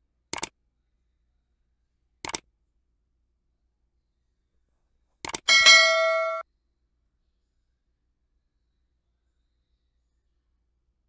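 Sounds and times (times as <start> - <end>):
quick click: 0.3 - 0.5, 2.2 - 2.4
bright bell ding: 5.5 - 6.4.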